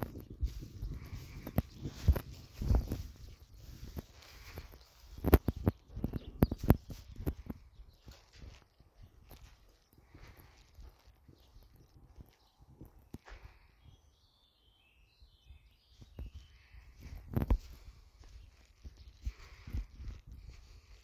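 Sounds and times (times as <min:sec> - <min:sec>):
bird chirping: 0:00.1 - 0:19.7.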